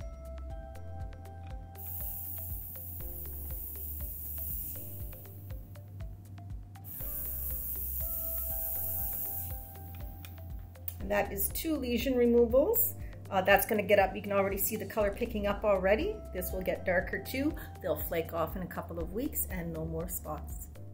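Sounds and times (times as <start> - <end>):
background music: 0.0 - 20.9
gas spray hissing: 1.8 - 5.6, 6.8 - 10.4.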